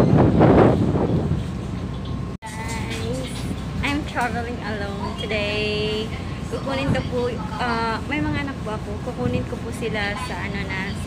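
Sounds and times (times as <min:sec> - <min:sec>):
ferry engine rumble: 0:00.0 - 0:11.0
wind gusting on microphone: 0:00.0 - 0:11.0.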